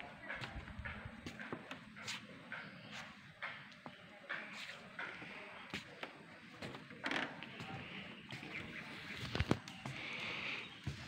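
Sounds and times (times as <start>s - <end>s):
footsteps on hard walkway: 0.0s - 11.0s.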